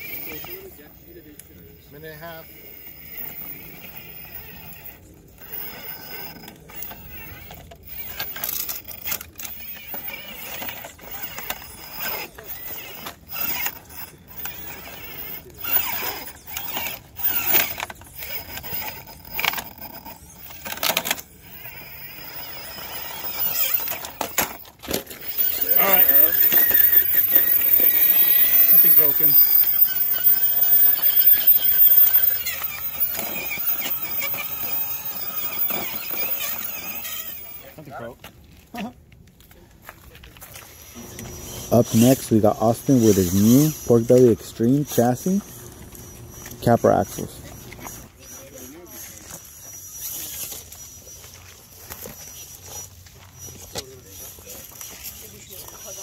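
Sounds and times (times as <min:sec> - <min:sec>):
rc car motor and gear whine: 0:00.0 - 0:38.2, 0:40.5 - 0:56.0
shrill sliding pitch sound: 0:25.2 - 0:37.7.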